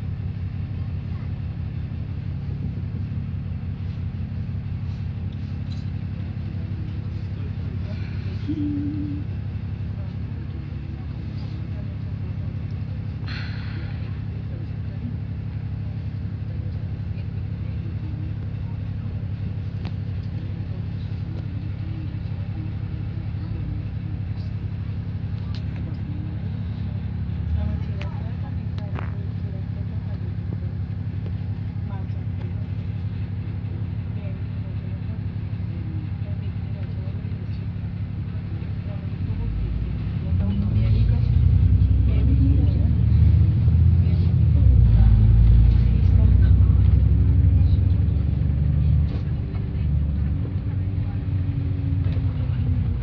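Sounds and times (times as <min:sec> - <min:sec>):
bus engine idling and revving: 0:00.0 - 0:53.0.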